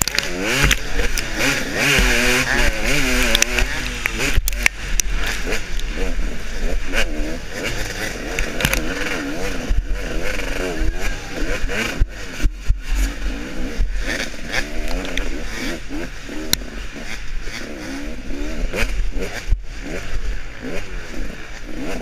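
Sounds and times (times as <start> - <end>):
bike knocking over bumps: 0.0 - 4.5
motorcycle engine revving: 0.0 - 22.0.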